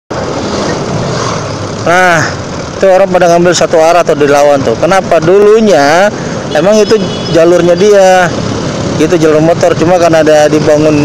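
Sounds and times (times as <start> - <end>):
road and wind noise: 0.1 - 11.0
man talking: 1.8 - 8.4, 9.0 - 11.0.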